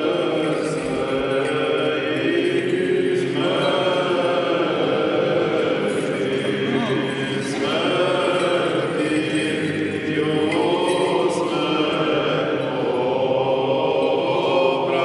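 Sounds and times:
choir chanting: 0.0s - 15.0s.

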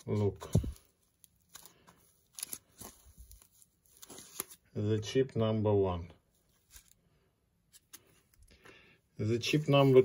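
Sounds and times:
packing foam rustling and crackling: 0.0s - 4.7s.

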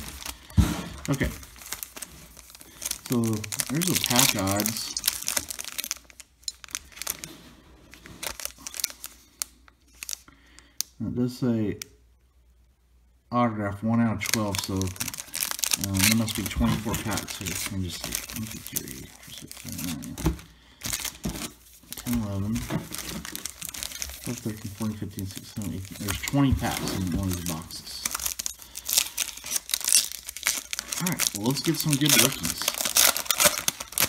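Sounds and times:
foil wrappers crinkling: 0.0s - 10.7s, 14.1s - 34.0s.

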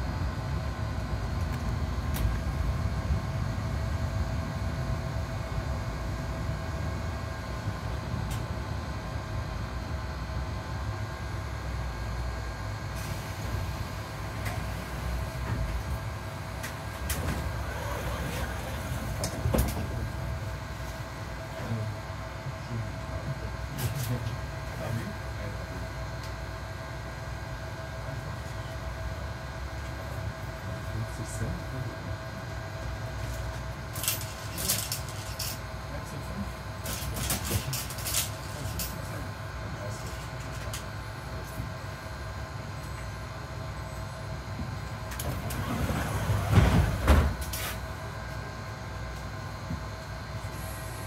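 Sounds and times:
bus engine and cabin rumble: 0.0s - 51.0s.

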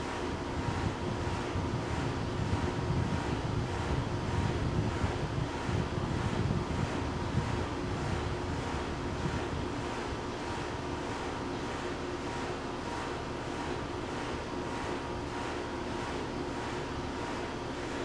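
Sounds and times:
wind buffeting microphone: 0.2s - 11.2s.

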